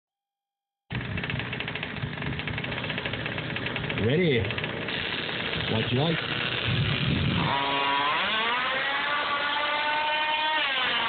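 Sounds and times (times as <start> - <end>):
model car engine idling: 0.9 - 11.0.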